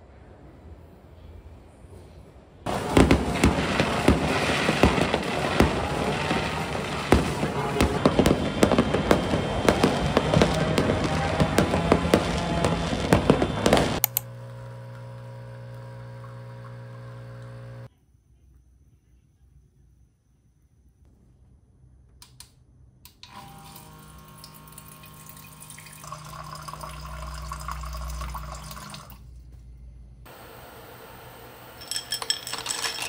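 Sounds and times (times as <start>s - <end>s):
fireworks crackling and banging: 2.7s - 14.0s
coffee machine pump humming: 12.8s - 17.9s, 23.3s - 29.2s.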